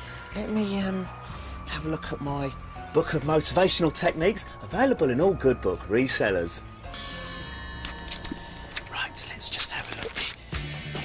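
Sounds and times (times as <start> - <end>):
bell-like chime ringing: 6.9 - 10.0.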